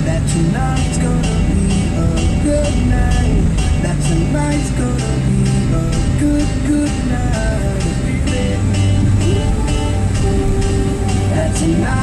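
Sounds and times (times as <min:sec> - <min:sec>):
car engine and road hum: 0:00.0 - 0:12.0
pop music on car stereo: 0:00.0 - 0:12.0.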